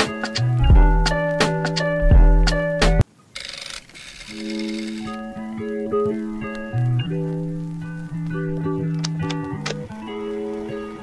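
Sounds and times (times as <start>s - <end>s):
background guitar music: 0.0s - 3.0s, 4.3s - 11.0s.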